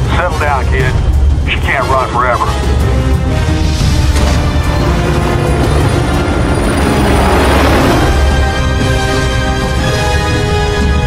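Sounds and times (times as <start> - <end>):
dramatic film music: 0.0 - 11.0
helicopter hovering rumble: 0.0 - 11.0.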